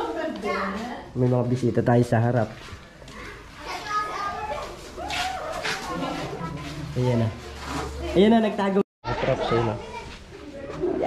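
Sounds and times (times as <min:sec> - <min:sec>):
children's voices: 0:00.0 - 0:01.1, 0:03.1 - 0:07.0, 0:09.1 - 0:11.0.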